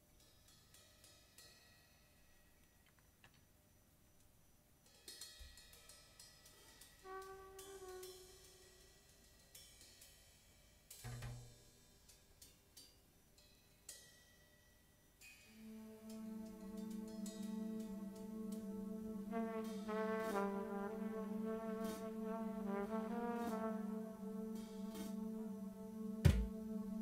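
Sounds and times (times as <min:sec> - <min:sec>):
brass held note: 0:07.0 - 0:08.6, 0:15.6 - 0:27.0
brass notes: 0:07.0 - 0:09.1, 0:15.5 - 0:27.0
drum and cymbal hits: 0:21.8 - 0:23.7, 0:24.4 - 0:25.3, 0:26.2 - 0:26.6.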